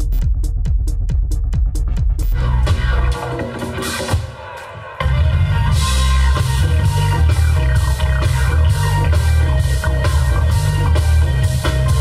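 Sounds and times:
bass and kick drum: 0:00.0 - 0:03.4, 0:05.0 - 0:12.0
band playing latin dance music: 0:02.4 - 0:12.0.

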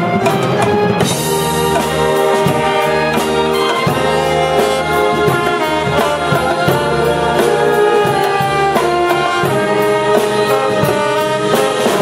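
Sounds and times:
timpani strokes: 0:00.0 - 0:12.0
wind band playing held chords: 0:00.0 - 0:12.0
choir singing: 0:01.1 - 0:12.0.

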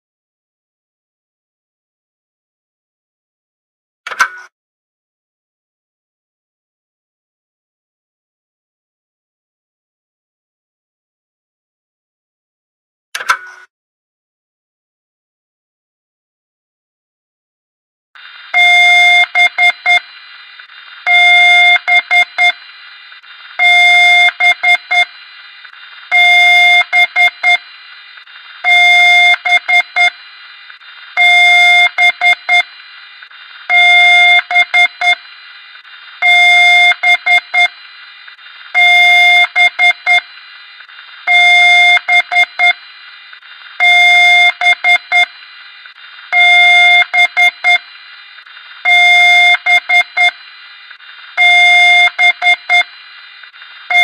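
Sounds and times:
steady hiss: 0:18.2 - 0:53.9
electronic alarm beeping: 0:18.5 - 0:20.1, 0:21.0 - 0:22.6, 0:23.6 - 0:25.1, 0:26.1 - 0:27.6, 0:28.6 - 0:30.2, 0:31.2 - 0:32.7, 0:33.7 - 0:35.2, 0:36.2 - 0:37.8, 0:38.8 - 0:40.3, 0:41.2 - 0:42.8, 0:43.8 - 0:45.3, 0:46.3 - 0:47.9, 0:48.8 - 0:50.4, 0:51.4 - 0:52.9.

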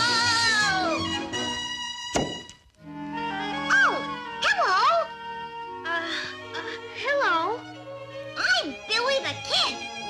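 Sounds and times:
sharp thunk: 0:02.1 - 0:02.6.

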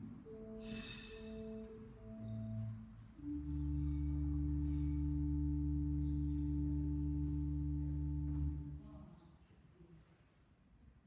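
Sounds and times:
pipe organ low chord: 0:00.0 - 0:08.9.

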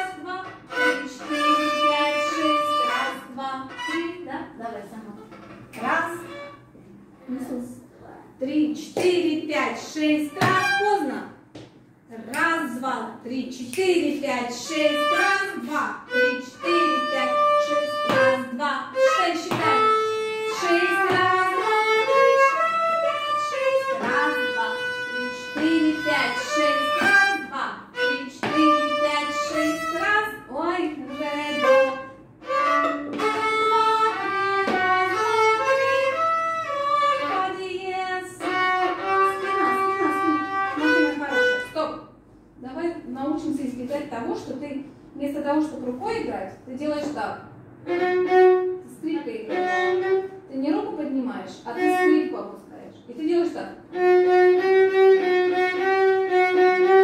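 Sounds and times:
violin playing short bowed notes: 0:00.0 - 0:04.3, 0:06.1 - 0:06.7, 0:14.7 - 0:30.2, 0:30.8 - 0:37.6, 0:38.4 - 0:41.8.

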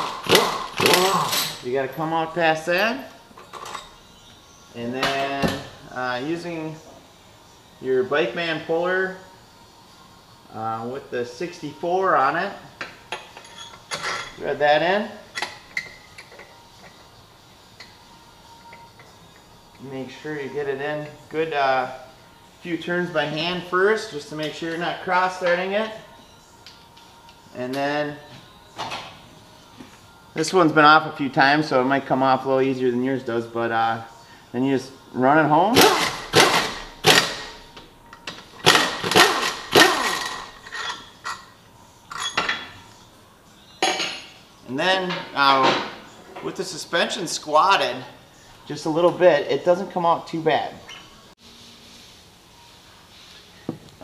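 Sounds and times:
impact wrench hammering: 0:00.0 - 0:01.3, 0:35.8 - 0:37.5, 0:38.6 - 0:40.5.

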